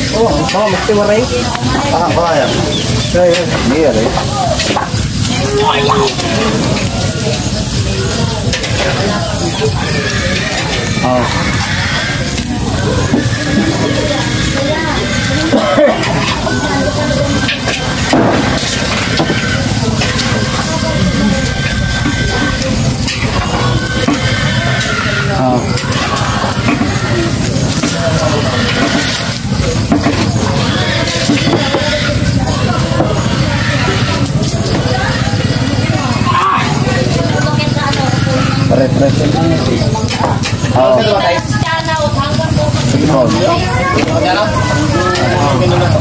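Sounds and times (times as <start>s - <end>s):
people talking: 0.0s - 46.0s
steady dense noise: 0.0s - 46.0s.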